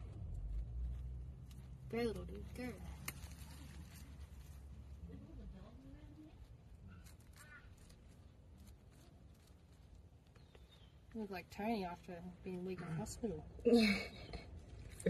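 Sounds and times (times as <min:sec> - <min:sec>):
low rumble: 0:00.0 - 0:07.0.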